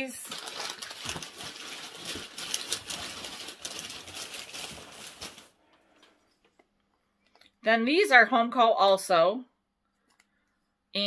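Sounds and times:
hands rustling packing material: 0:00.0 - 0:06.1.

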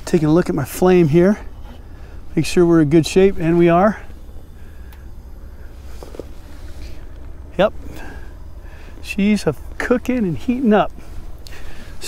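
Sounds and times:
camp stove burning: 0:00.0 - 0:12.0
faint gas hiss: 0:10.8 - 0:12.0.

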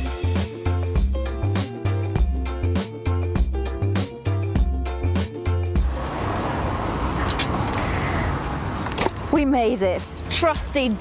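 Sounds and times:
road traffic: 0:03.6 - 0:11.0.

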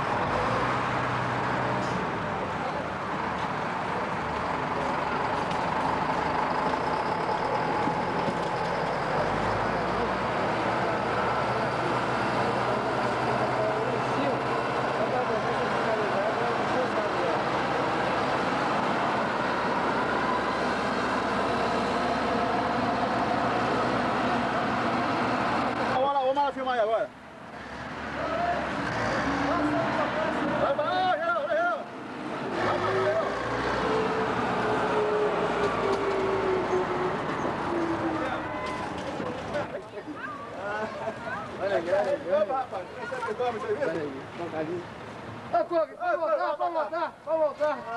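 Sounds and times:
diesel engines running: 0:00.0 - 0:26.2, 0:27.2 - 0:45.5.

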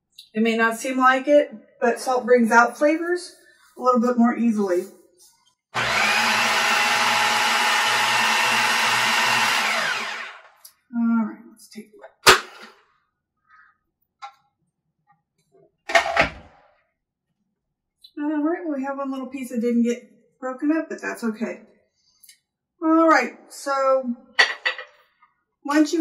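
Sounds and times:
food processor motor running: 0:05.8 - 0:10.6.

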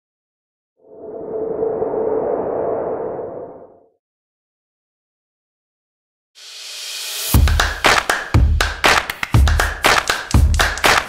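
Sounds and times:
swelling whoosh: 0:00.8 - 0:03.9.

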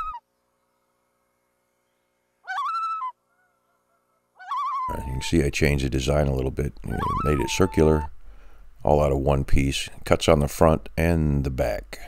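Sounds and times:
high wavering bird call: 0:00.0 - 0:00.2, 0:02.4 - 0:05.2, 0:06.9 - 0:08.2.

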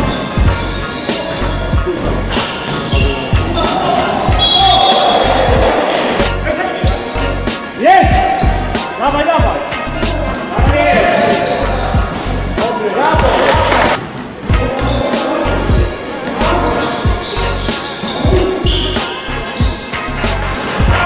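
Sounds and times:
music with steady low beat: 0:00.0 - 0:08.8, 0:09.4 - 0:11.0, 0:13.2 - 0:21.0
shoe squeaks: 0:00.0 - 0:09.0, 0:11.2 - 0:20.4
players' voices echoing: 0:00.0 - 0:19.8.

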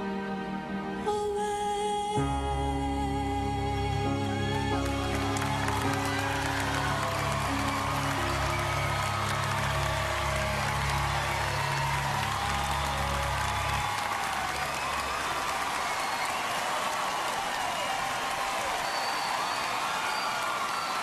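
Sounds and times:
band playing held chords: 0:03.4 - 0:14.5
audience applauding and cheering: 0:04.2 - 0:21.0.

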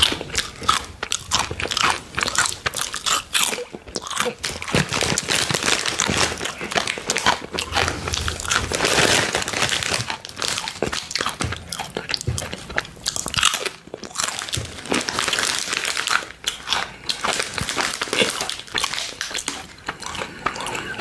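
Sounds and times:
plastic bag crinkling: 0:00.0 - 0:11.5, 0:13.2 - 0:21.0
crunching and chewing chips: 0:00.0 - 0:21.0.

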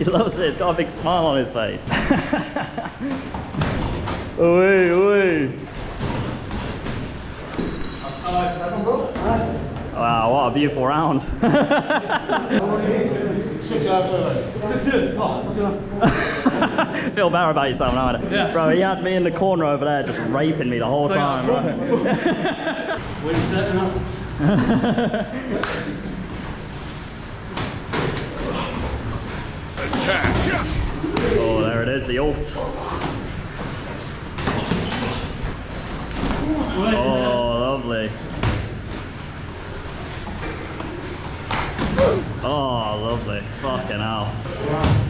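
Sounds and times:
gym background noise: 0:02.9 - 0:24.7, 0:25.4 - 0:45.0.

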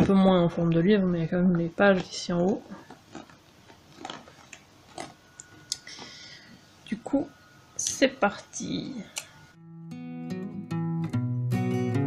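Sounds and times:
packaging clicks and crinkles: 0:01.9 - 0:06.0.

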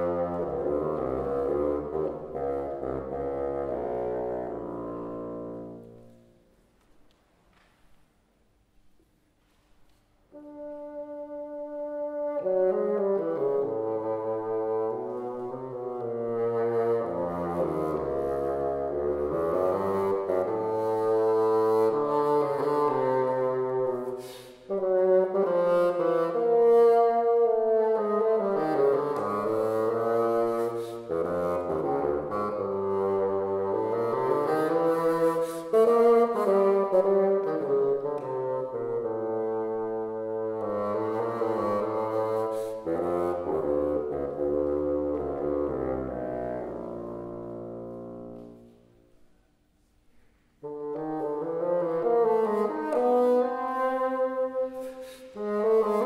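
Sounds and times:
solo bassoon: 0:00.0 - 0:06.6, 0:10.3 - 0:50.0, 0:50.6 - 0:56.0.

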